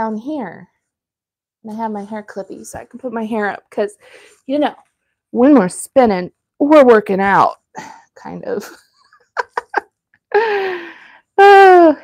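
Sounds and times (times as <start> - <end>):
woman laughing: 8.6 - 10.8.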